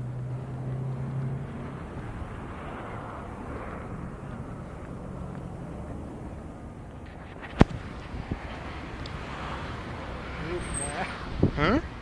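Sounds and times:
low engine hum: 0:00.0 - 0:12.0
road traffic rumble: 0:00.0 - 0:12.0
steady rushing noise: 0:00.0 - 0:12.0.

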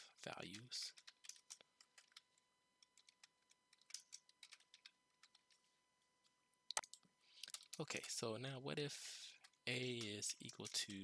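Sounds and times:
typing on computer keyboard: 0:00.5 - 0:05.6, 0:06.7 - 0:08.2, 0:09.4 - 0:11.0.

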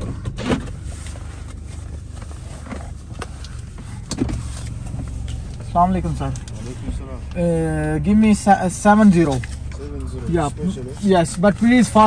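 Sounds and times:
low car cabin hum: 0:00.0 - 0:12.0.

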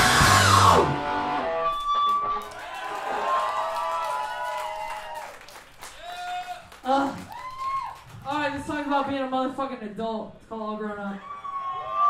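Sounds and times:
sustained electric guitar notes: 0:00.0 - 0:02.5
live rock band playing: 0:00.0 - 0:02.6.

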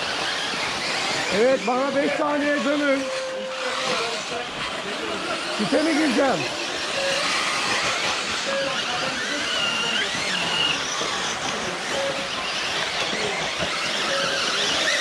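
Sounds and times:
electric rc car motors whining: 0:00.0 - 0:15.0
steady background noise: 0:00.0 - 0:15.0.

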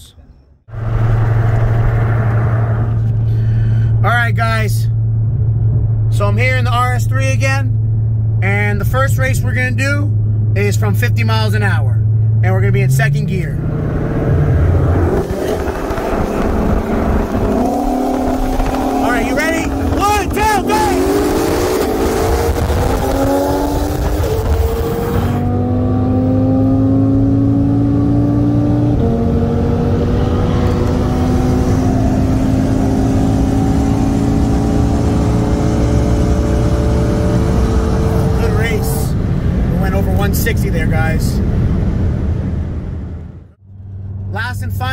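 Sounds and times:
car engine at full throttle: 0:00.0 - 0:44.9.

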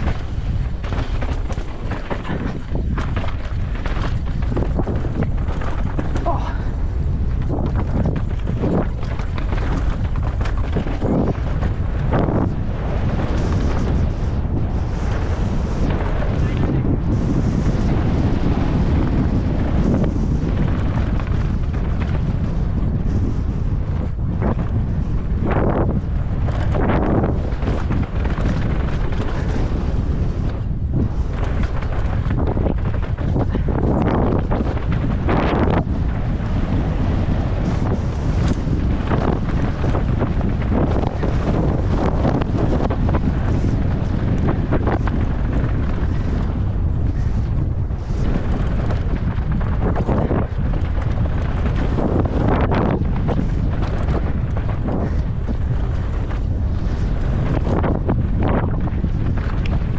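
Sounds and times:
bike knocking on bumps: 0:00.0 - 0:59.9
bike tyres rumbling on rough trail: 0:00.0 - 0:59.9
wind rushing over microphone: 0:00.0 - 0:59.9.

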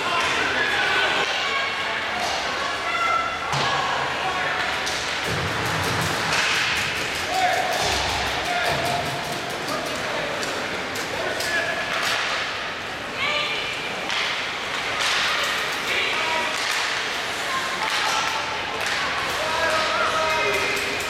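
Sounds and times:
spectators' voices: 0:00.0 - 0:21.0
hockey sticks and puck clacking: 0:04.5 - 0:12.8, 0:14.0 - 0:21.0.

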